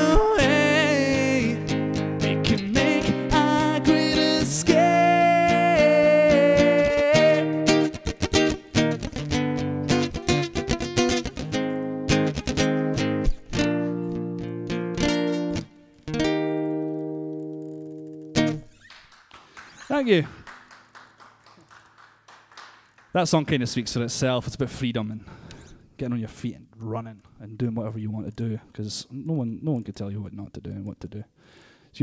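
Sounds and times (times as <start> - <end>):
acoustic guitar strumming: 0.0 - 18.9.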